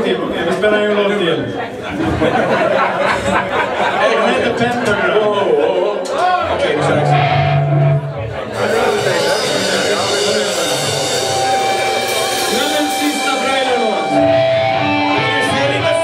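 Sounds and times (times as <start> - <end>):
metal band playing: 6.3 - 16.0.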